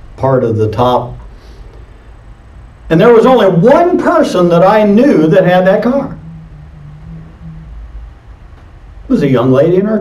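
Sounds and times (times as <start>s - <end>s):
low room hum: 0.0s - 10.0s
faint steady low tone: 4.6s - 9.1s.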